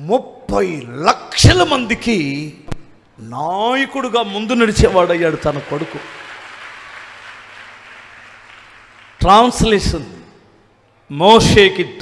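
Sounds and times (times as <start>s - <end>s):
congregation applauding softly: 4.1s - 10.1s.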